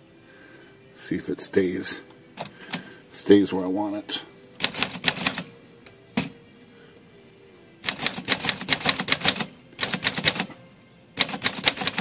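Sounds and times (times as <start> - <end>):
manual typewriter typing: 4.6 - 5.5, 7.8 - 10.5, 11.2 - 12.0.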